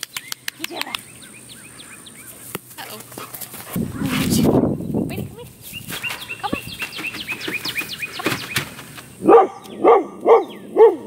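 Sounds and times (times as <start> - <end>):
small birds chirping: 0.0 - 11.0
dog paws running on dirt: 2.2 - 4.6, 5.2 - 9.2
dogs scuffling: 2.2 - 4.6, 5.3 - 9.2.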